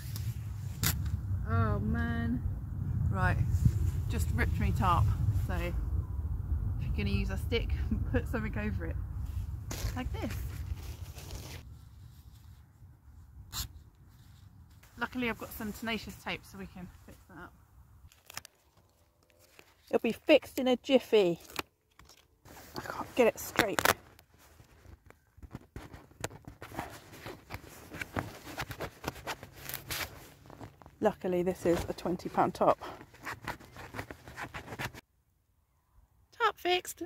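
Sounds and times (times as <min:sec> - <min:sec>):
wind rumble on microphone: 0:00.0 - 0:13.6
nylon fabric rustling: 0:22.4 - 0:35.0.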